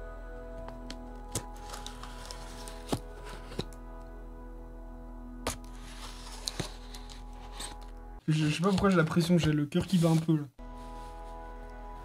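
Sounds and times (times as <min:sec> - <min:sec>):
soft background music: 0:00.0 - 0:12.0
packing tape crackling: 0:00.8 - 0:03.7.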